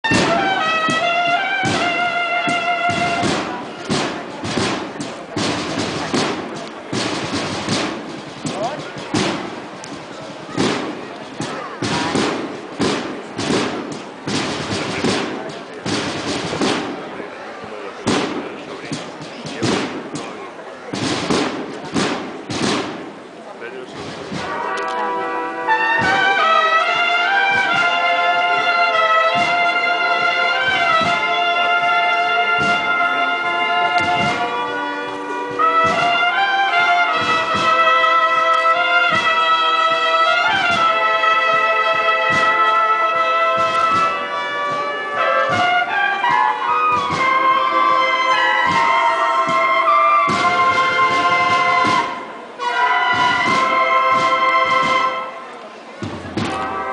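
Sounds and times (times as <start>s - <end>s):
brass band playing a march: 0.0s - 56.9s
crowd voices: 0.0s - 56.9s
knocks and thumps: 0.1s - 17.2s, 18.0s - 25.0s, 33.9s - 34.6s, 43.5s - 52.3s, 53.0s - 55.3s, 56.0s - 56.9s.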